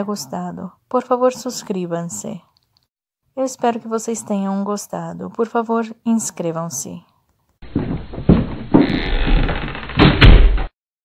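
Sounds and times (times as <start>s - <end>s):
knocks and thumps: 7.6s - 10.7s.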